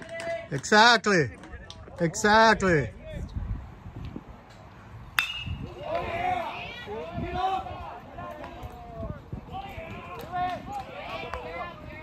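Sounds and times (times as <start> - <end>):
metal bat hitting ball: 5.2 - 5.7
spectators' voices: 5.6 - 12.0.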